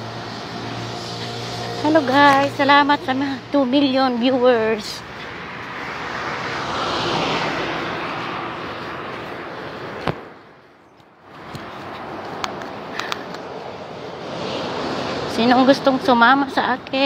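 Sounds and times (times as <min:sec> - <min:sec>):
road traffic passing: 0:00.0 - 0:17.0.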